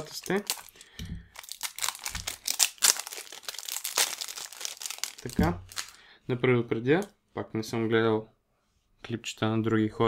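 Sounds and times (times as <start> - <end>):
cellophane wrapper crinkling: 0.0 - 6.0.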